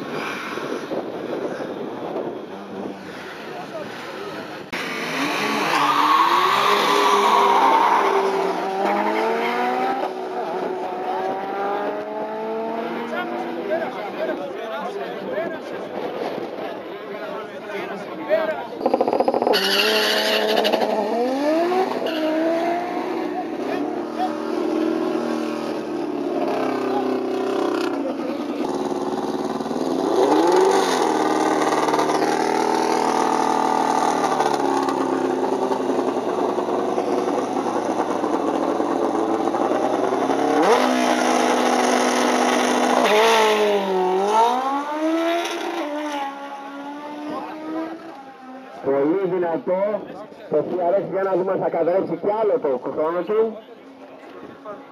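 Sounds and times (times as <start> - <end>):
drag racing engines revving: 0.1 - 14.0, 18.7 - 49.7.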